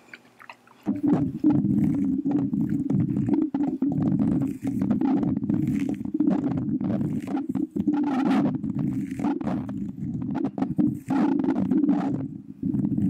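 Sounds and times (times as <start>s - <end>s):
cap scratching microphone grille: 0.8s - 13.0s.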